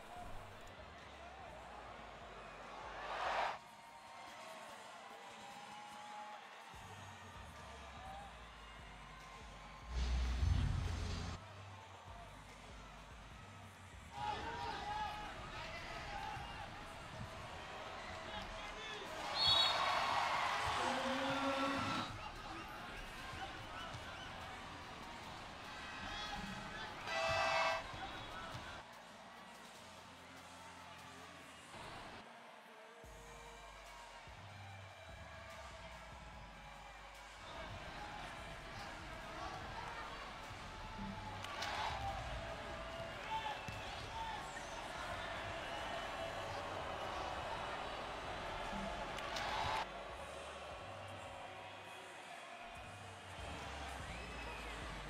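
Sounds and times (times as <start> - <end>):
crowd noise: 0.0 - 55.0
music over public address: 5.3 - 55.0
loud horn blast: 27.0 - 28.2.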